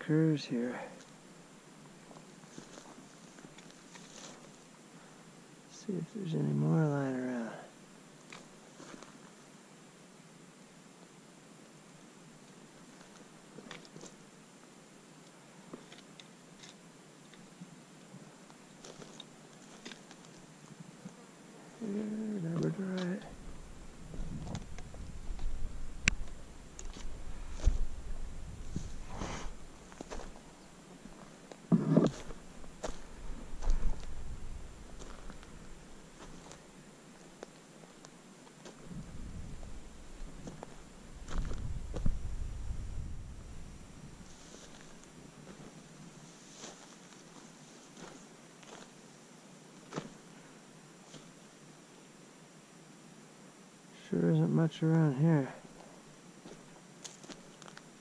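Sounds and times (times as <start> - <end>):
footsteps crunching on gravel: 2.1 - 4.5, 22.6 - 42.4, 46.4 - 48.9, 56.4 - 57.8
wind rumbling on microphone: 23.2 - 30.4, 31.7 - 35.9, 38.8 - 44.8.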